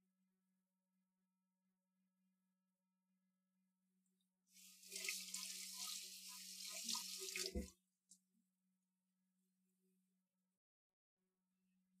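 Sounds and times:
tap running into sink: 6.8s - 7.7s.

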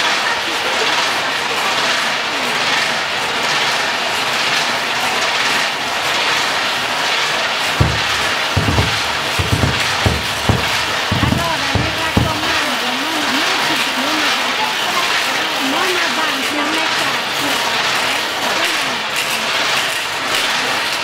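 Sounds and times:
deep drum beats: 7.8s - 12.7s
crowd murmuring and shuffling: 7.8s - 21.0s.

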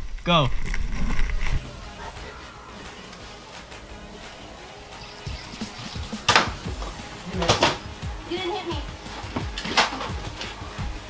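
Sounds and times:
foam dart blaster shots: 6.2s - 6.6s.

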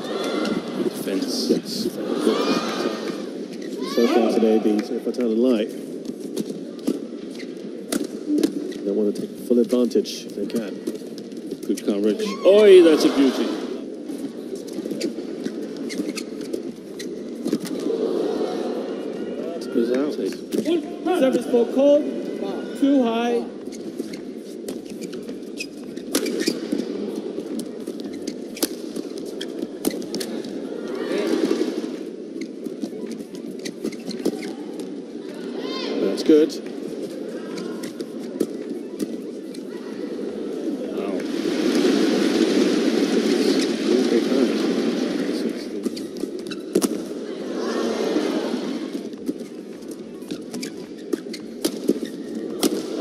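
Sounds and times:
crowd murmur: 0.0s - 8.7s, 17.1s - 25.5s, 26.6s - 53.0s
shoes squeaking on court: 2.8s - 4.9s, 5.6s - 9.3s, 14.0s - 17.9s, 22.1s - 36.0s, 36.6s - 42.6s, 45.8s - 47.2s, 48.6s - 53.0s.

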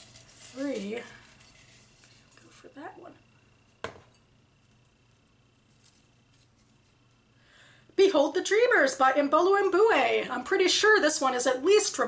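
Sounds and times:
paper rustling: 0.0s - 2.6s
ceramic mug set down: 3.8s - 4.2s.

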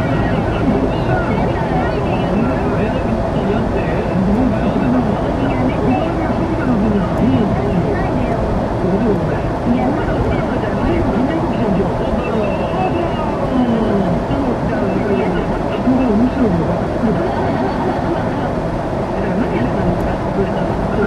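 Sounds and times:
car road and engine noise: 0.0s - 21.0s
indistinct talking: 0.0s - 21.0s.

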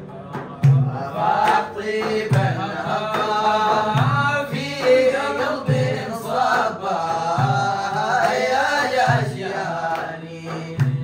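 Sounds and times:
hand-struck frame drums: 0.0s - 11.0s
men chanting together: 0.0s - 11.0s.

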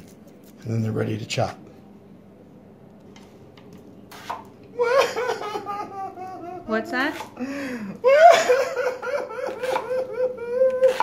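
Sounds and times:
person laughing: 4.8s - 6.8s, 7.4s - 11.0s.

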